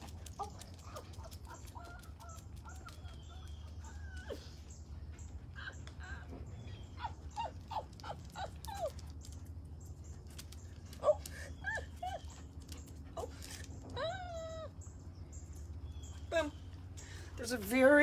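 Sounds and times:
low hum: 0.0s - 18.0s.

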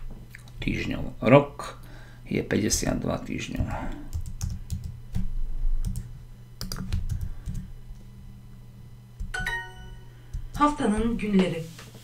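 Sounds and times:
typing on computer keyboard: 4.1s - 7.6s.

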